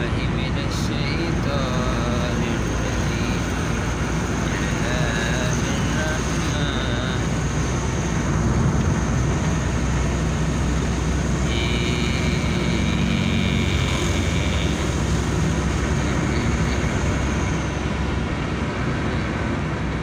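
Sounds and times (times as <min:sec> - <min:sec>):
car engine and road rumble: 0:00.0 - 0:20.0
wind noise: 0:01.3 - 0:20.0
high steady tone: 0:09.6 - 0:18.4.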